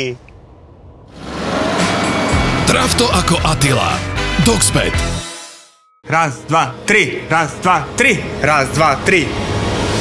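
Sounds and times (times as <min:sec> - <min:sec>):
car driving off: 0:01.1 - 0:03.2.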